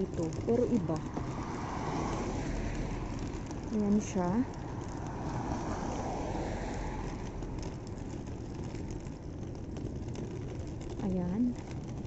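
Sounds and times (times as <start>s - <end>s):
traffic rush: 0.0s - 12.0s
car driving past: 0.9s - 9.6s.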